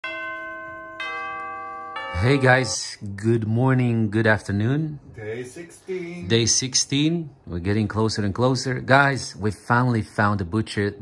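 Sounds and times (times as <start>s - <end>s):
bell-like chimes: 0.0s - 3.0s.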